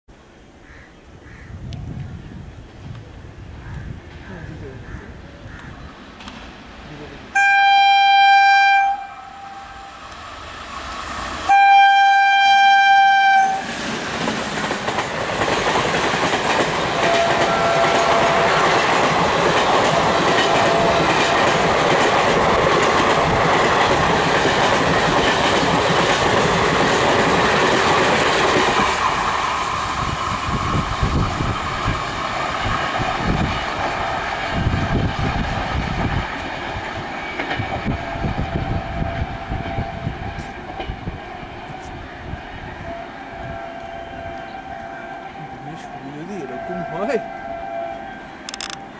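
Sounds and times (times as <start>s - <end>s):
locomotive air horn blasts: 7.4s - 10.0s, 11.5s - 13.7s, 17.0s - 18.8s, 20.3s - 21.3s
train wheels clacking over rail joints: 13.7s - 29.3s, 31.2s - 41.5s.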